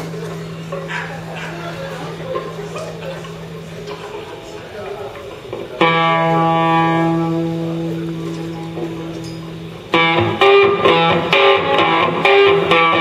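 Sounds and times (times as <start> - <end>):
band playing sustained note: 5.5 - 13.0.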